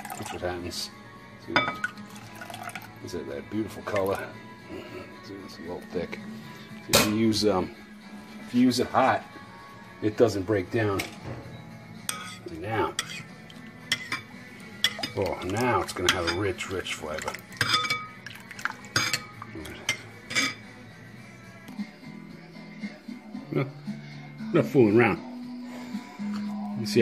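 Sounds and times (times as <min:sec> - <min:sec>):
liquid pouring into a bowl: 0:00.0 - 0:00.5, 0:01.8 - 0:03.0, 0:03.8 - 0:04.3, 0:14.9 - 0:19.5.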